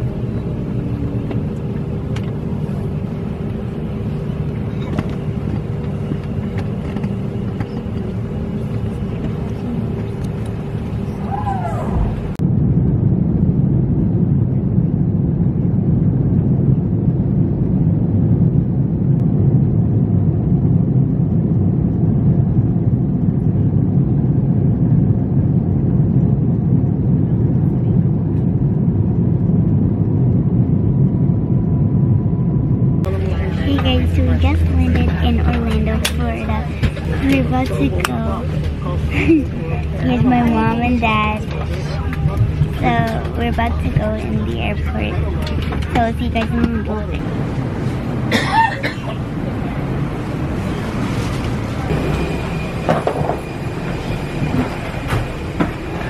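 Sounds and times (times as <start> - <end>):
airliner cabin hum: 0.0 - 56.0
jet engines and airflow rumble: 0.0 - 56.0.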